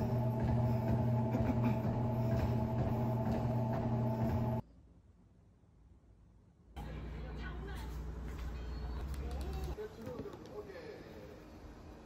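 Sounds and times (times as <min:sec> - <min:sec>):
steady low hum: 0:00.0 - 0:04.6
muffled tv talk: 0:06.8 - 0:11.4.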